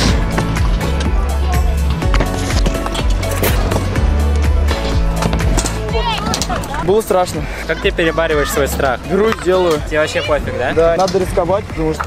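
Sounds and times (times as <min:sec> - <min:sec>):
music with heavy bass: 0:00.0 - 0:12.0.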